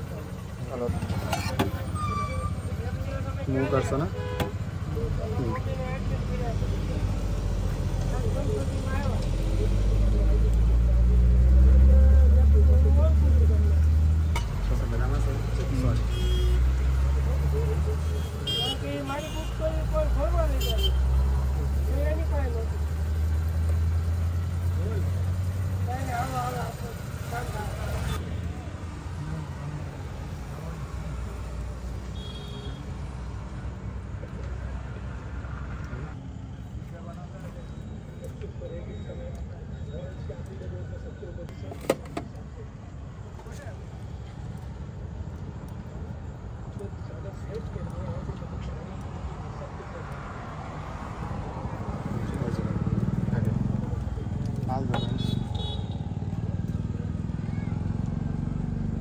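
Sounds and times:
engine rumbling: 0.0 - 59.0
people talking: 7.9 - 14.0, 14.6 - 22.9, 36.8 - 44.0, 46.7 - 55.4.

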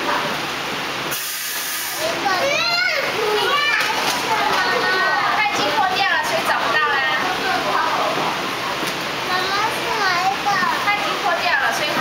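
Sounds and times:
steady hiss: 1.0 - 3.5
toddler calling out: 2.0 - 4.0.

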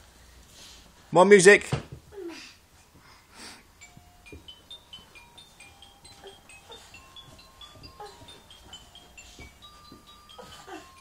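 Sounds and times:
tinkly electronic toy tune: 3.8 - 11.0
soft knocks: 7.2 - 10.4.

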